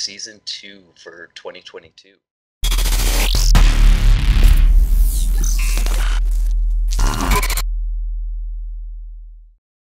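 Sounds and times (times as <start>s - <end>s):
glitchy digital noise: 2.6s - 7.6s
deep bass tone: 3.2s - 9.6s.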